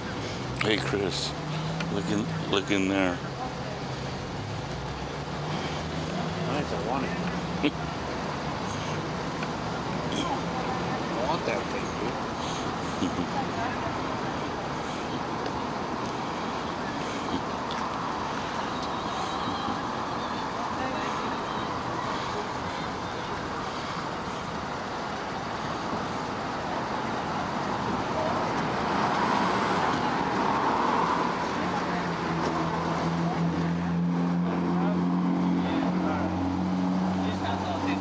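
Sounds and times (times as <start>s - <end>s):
indistinct voices talking: 0.0s - 38.0s
road traffic: 0.0s - 38.0s.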